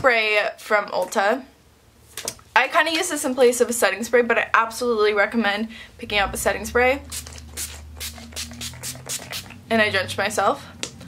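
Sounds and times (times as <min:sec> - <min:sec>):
spray bottle spritzing: 0:07.0 - 0:09.6.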